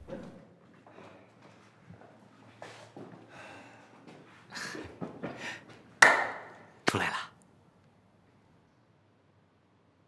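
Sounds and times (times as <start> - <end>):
hand slaps on shoulder: 6.0 - 6.5.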